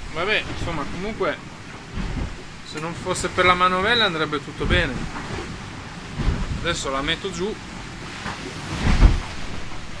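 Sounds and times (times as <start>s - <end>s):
water and wind rushing: 0.0s - 10.0s.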